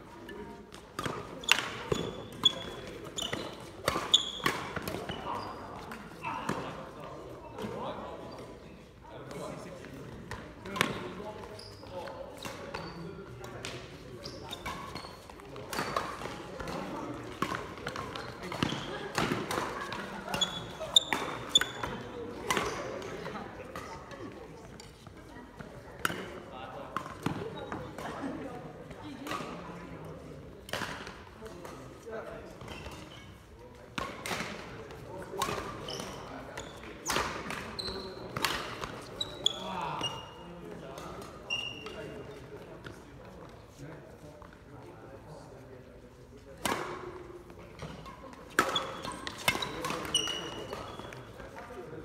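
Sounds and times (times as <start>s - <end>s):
voices in hall: 0.0s - 52.0s
rackets hitting shuttlecock: 0.7s - 6.8s, 10.3s - 11.2s, 14.5s - 23.8s, 25.6s - 28.4s, 33.9s - 40.2s, 46.6s - 51.7s.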